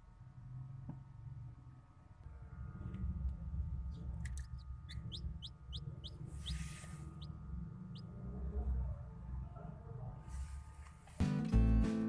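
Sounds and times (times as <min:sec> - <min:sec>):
low steady rumble: 0:00.0 - 0:10.8
chick peeping: 0:04.2 - 0:08.1.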